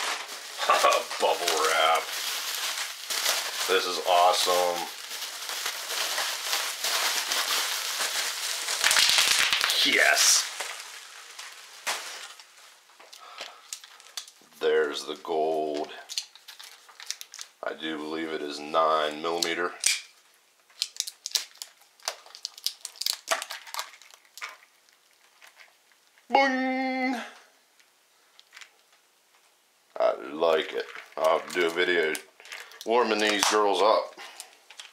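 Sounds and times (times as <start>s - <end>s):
bubble wrap crinkling: 0.0s - 18.3s, 18.9s - 26.3s, 27.8s - 29.5s, 30.2s - 34.9s.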